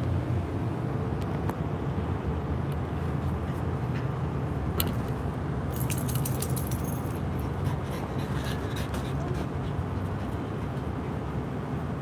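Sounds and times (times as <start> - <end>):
small metal pieces jingling: 5.7 - 7.1.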